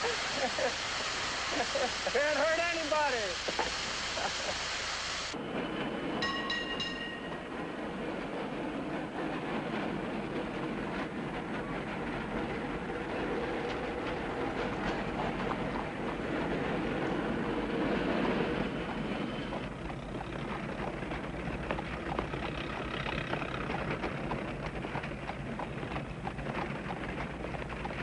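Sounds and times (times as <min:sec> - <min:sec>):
train rumbling on rails: 0:00.0 - 0:28.0
ringing tone: 0:06.2 - 0:07.4.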